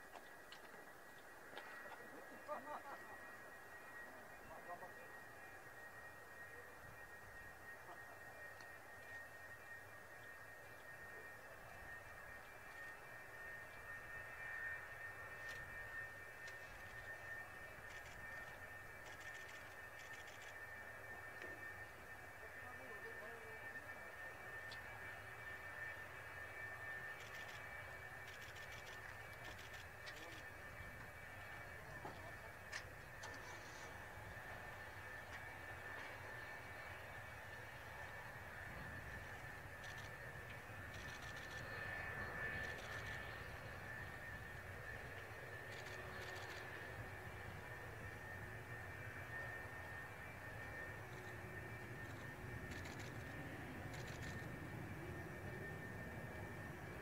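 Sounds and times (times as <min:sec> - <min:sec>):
distant jet engine whine: 0:00.0 - 0:57.0.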